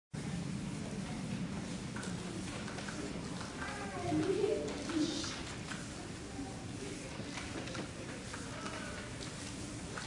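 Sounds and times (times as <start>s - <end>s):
murmur of room noise: 0.2s - 10.0s.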